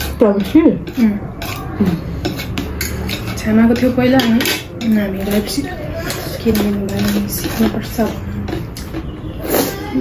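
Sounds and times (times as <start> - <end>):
chopsticks clicking on plates: 0.0 - 9.2.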